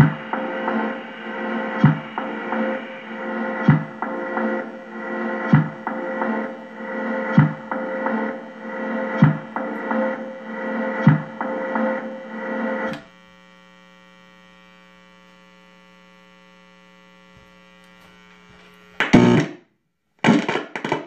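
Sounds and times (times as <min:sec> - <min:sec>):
electronic tech-house beat: 0:00.0 - 0:13.0
electrical mains hum: 0:00.0 - 0:19.6.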